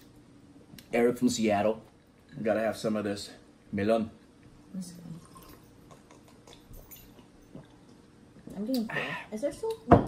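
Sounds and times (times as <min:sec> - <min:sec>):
small wet eating sounds: 0:05.0 - 0:09.1.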